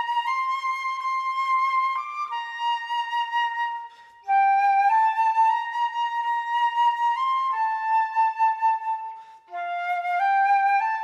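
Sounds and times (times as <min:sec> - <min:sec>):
flute playing slow melody: 0:00.0 - 0:11.0.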